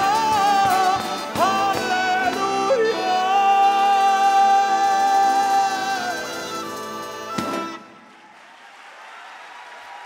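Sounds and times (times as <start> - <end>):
man singing a long high note: 0.0 - 7.3
folk ensemble playing: 0.0 - 8.1.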